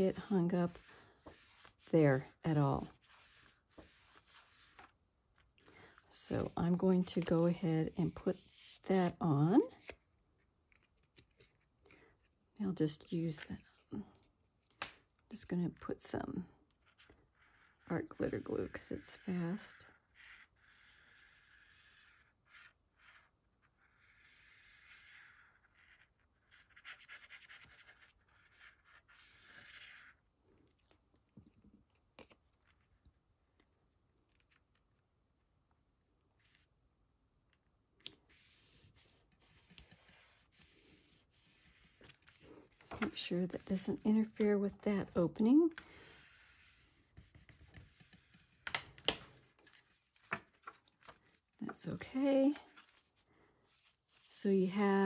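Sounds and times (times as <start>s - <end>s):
glue tip scratching on cardstock: 23.8s - 30.1s
paper handling: 38.0s - 54.4s
cardstock pages rustling: 38.3s - 55.0s.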